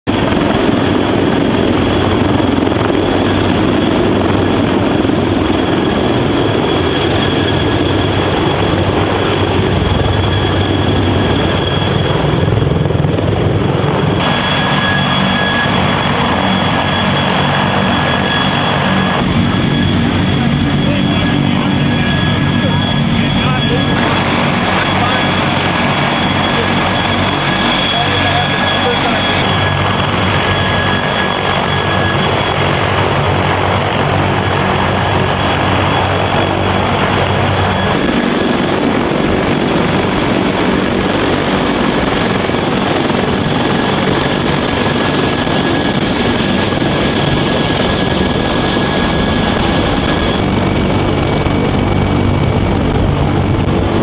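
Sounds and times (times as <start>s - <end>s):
helicopter rotor noise: 0.0s - 54.0s
helicopter turbine whine: 0.0s - 54.0s.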